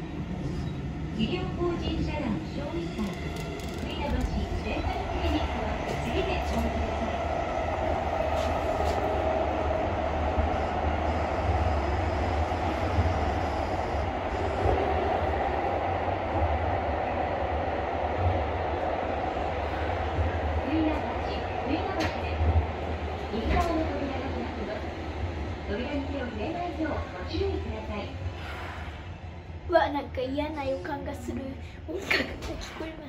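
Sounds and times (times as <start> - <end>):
subway train rumbling in tunnel: 0.0 - 33.0.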